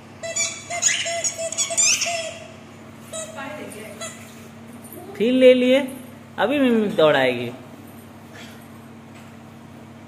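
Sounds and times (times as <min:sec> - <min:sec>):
rubber squeaky ball squeaking: 0:00.2 - 0:02.5.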